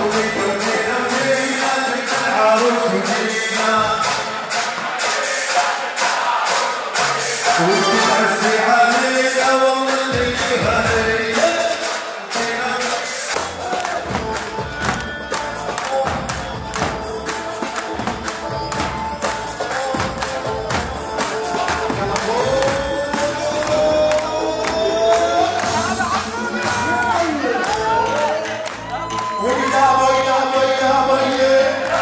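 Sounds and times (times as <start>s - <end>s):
person singing: 0.0s - 5.7s, 7.0s - 32.0s
large drums beating: 13.4s - 27.1s
jingling percussion: 13.4s - 32.0s.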